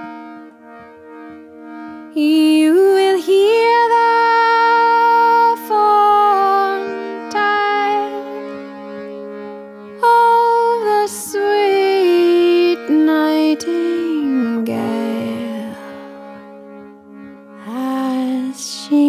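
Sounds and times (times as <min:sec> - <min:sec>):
sustained accompanying tones: 0:00.0 - 0:19.0
woman singing folk song: 0:02.1 - 0:08.7, 0:10.0 - 0:16.2, 0:17.6 - 0:19.0.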